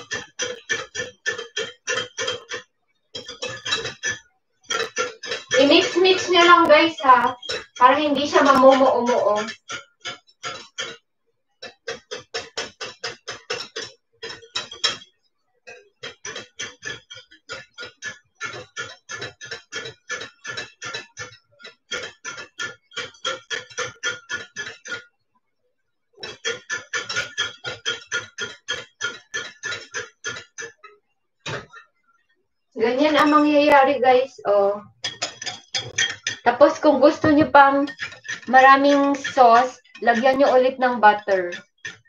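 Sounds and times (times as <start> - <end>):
wire whisk beating in glass bowl: 0.0 - 11.0, 11.6 - 15.1, 15.7 - 25.1, 26.2 - 30.9, 32.8 - 42.0.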